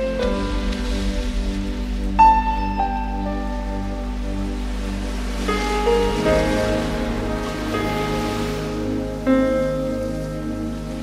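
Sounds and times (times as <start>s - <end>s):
ocean surf: 0.0s - 11.0s
slow instrumental music: 0.0s - 11.0s.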